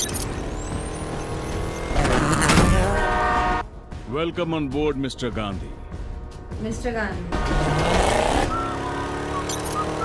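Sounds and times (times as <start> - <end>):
vehicle engine noise: 0.0 - 3.8, 5.9 - 10.0.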